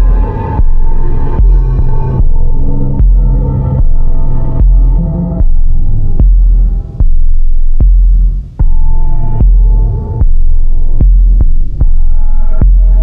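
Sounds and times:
buzzing pitched drone: 0.0s - 13.0s
experimental electronic music: 0.0s - 13.0s
pulsing sub-bass throb: 0.0s - 13.0s.

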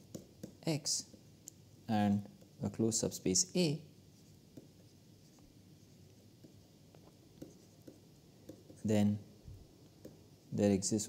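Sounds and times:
stylus tapping on tablet screen: 0.0s - 1.3s, 4.5s - 4.9s, 6.3s - 8.9s, 9.8s - 10.3s.

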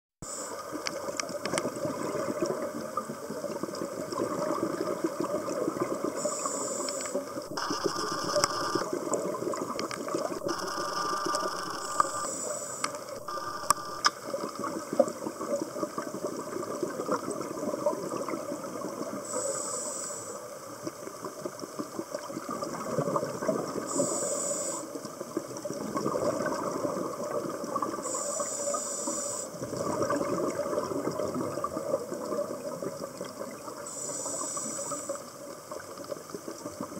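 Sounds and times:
steady underwater crackle: 0.2s - 36.9s
diver regulator breathing hiss: 6.1s - 7.4s, 12.0s - 13.2s, 19.2s - 20.5s, 23.9s - 25.0s, 28.0s - 29.6s, 33.9s - 35.3s
sharp clicks: 7.5s - 8.9s, 10.4s - 14.2s.

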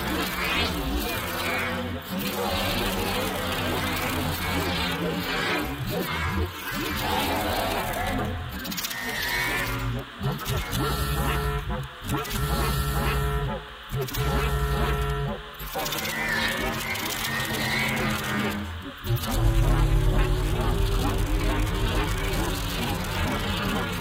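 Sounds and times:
dense electronic textures: 0.0s - 24.0s
sustained low bass tones: 19.0s - 24.0s.

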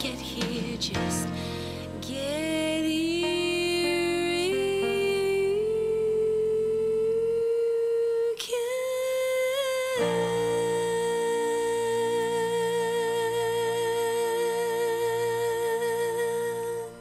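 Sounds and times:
piano chord: 0.0s - 7.7s, 8.8s - 17.0s
woman singing long notes: 2.0s - 17.0s.

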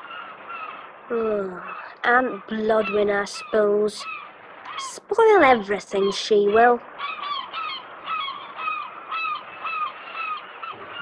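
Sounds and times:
seagulls calling: 0.0s - 11.0s
steady background hiss: 0.0s - 11.0s.

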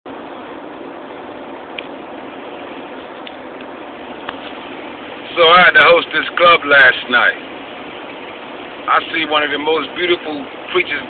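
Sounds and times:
road and wind noise in car: 0.1s - 11.0s.

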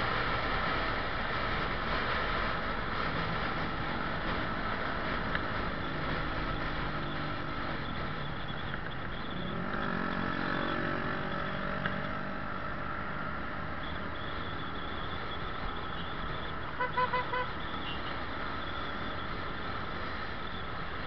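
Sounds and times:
horn short beeps: 16.8s - 18.1s.

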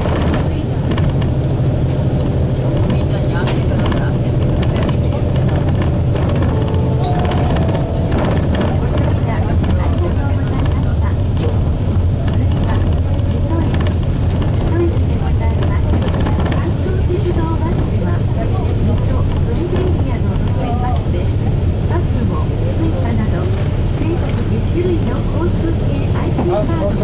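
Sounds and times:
diesel bus engine drone: 0.0s - 27.0s
road noise: 0.0s - 27.0s.

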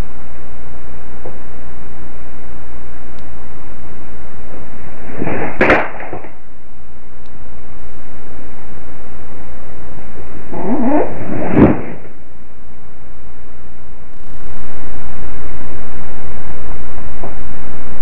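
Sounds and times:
microphone hiss: 0.0s - 18.0s
wavering pitched tone: 6.2s - 17.8s.

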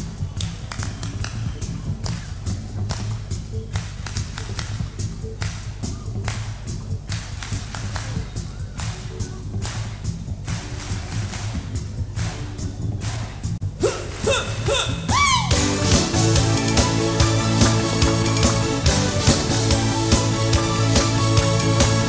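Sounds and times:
heavy bass line: 0.0s - 22.0s
live band playing funk: 14.9s - 22.0s.

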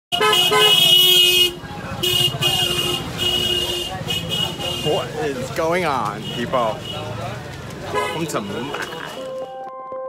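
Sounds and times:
vehicle horns honking: 0.1s - 5.2s, 6.1s - 7.2s, 7.8s - 9.6s
low traffic rumble: 0.1s - 9.4s.

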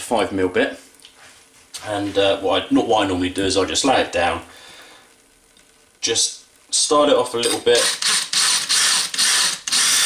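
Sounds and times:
drill bit grinding against glass: 7.4s - 10.0s.

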